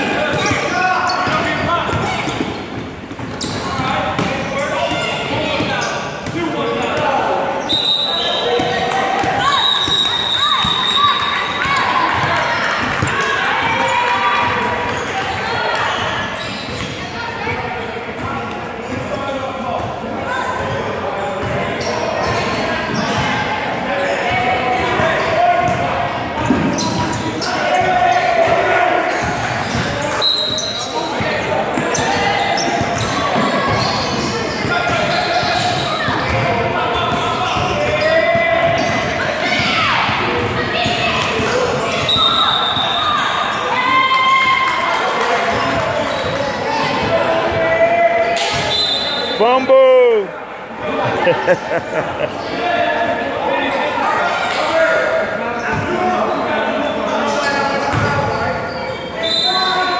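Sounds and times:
players' voices and shouts: 0.0s - 59.9s.

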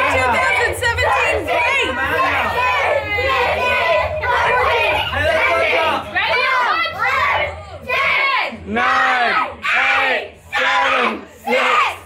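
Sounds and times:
children shouting excitedly: 0.0s - 10.0s.

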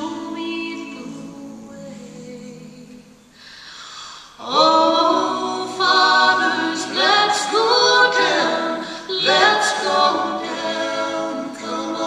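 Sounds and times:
a cappella harmony singing: 0.0s - 12.0s.

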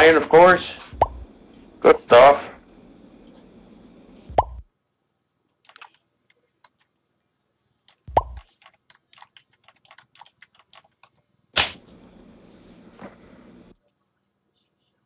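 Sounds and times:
soft keyboard typing clicks: 5.5s - 7.0s, 7.8s - 11.2s.

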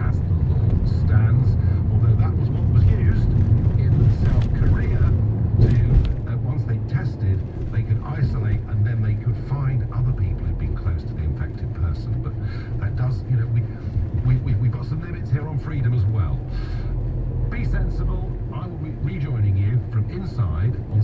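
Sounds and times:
car interior rumble: 0.0s - 21.0s.

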